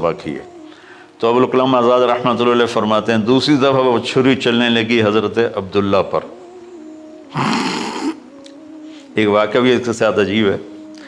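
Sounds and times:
man whimpering: 7.3s - 8.2s
sharp noisy breath: 7.3s - 8.2s.

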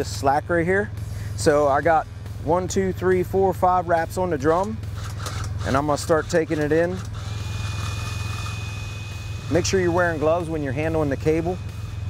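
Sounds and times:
engine running: 0.0s - 12.0s
electric winch whining: 3.9s - 12.0s.

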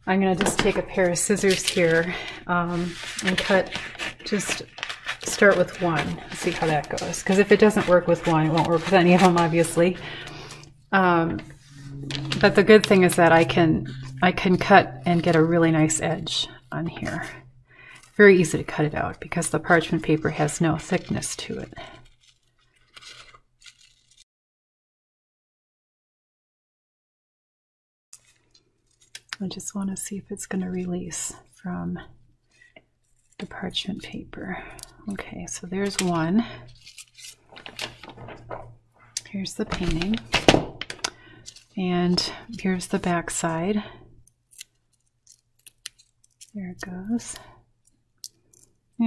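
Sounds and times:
scissors snipping paper: 0.6s - 9.8s, 19.6s - 24.2s, 36.7s - 38.1s, 44.3s - 47.4s.

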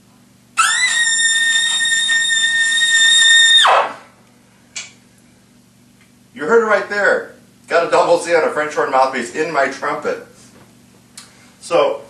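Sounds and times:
trumpet high note: 0.6s - 4.0s.

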